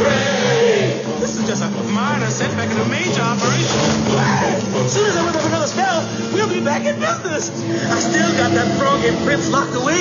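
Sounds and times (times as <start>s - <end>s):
background music with sustained notes: 0.0s - 10.0s
voices talking: 0.0s - 10.0s.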